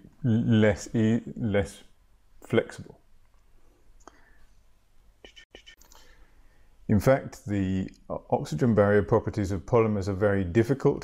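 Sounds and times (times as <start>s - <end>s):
man speaking: 0.0s - 3.0s, 6.9s - 11.0s
breath sounds: 3.6s - 4.7s, 5.3s - 6.8s
faint clicks: 5.2s - 6.1s.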